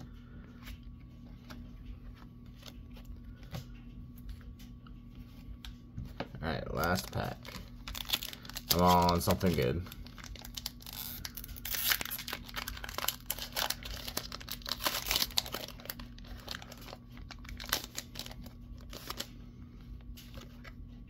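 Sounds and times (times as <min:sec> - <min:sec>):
faint low hum: 0:00.0 - 0:21.0
foil wrapper crinkling and tearing: 0:06.7 - 0:19.4.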